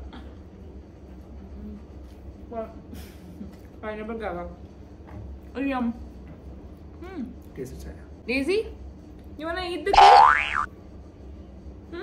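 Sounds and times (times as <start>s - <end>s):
cartoon boing sound effect: 10.0s - 10.7s.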